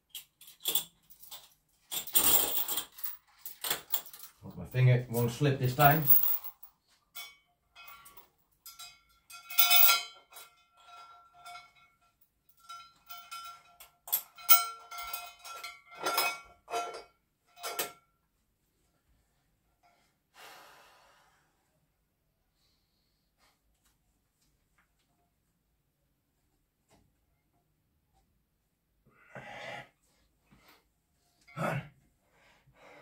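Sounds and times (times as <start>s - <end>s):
metal chain clinking on weight plate: 0.1s - 18.0s.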